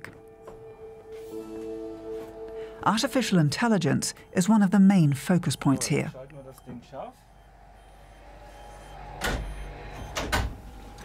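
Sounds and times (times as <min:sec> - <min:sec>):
electric bus humming: 0:00.0 - 0:11.0.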